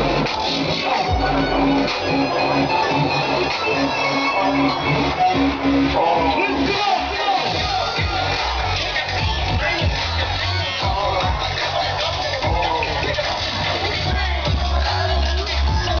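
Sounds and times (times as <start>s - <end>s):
crowd voices: 0.0s - 16.0s
heavy bass line: 0.0s - 16.0s
live music over loudspeakers: 0.0s - 16.0s.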